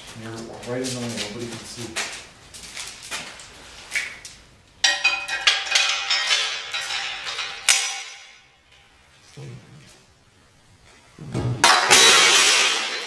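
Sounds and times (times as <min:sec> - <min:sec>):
metal chain rattling and clinking: 0:00.4 - 0:08.9.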